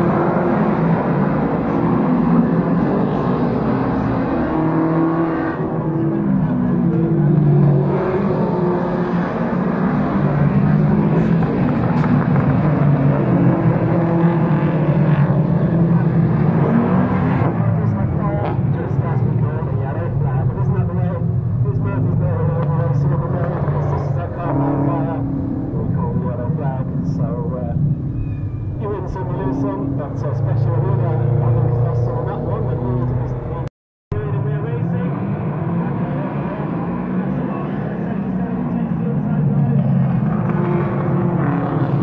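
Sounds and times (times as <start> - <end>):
race car engines running: 0.0 - 42.0
indistinct voices talking: 15.8 - 40.7.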